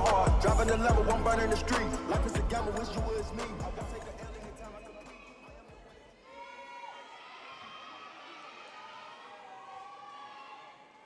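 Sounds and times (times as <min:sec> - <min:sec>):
crowd cheering and shrieking: 0:00.0 - 0:11.0.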